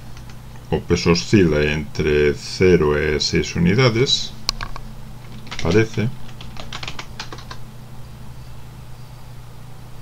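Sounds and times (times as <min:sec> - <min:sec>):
keyboard keys tapping: 0:04.5 - 0:07.6.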